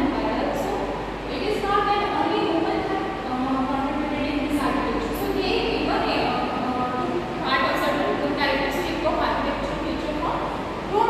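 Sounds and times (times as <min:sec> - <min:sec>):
woman lecturing: 0:00.0 - 0:03.3, 0:04.3 - 0:11.0.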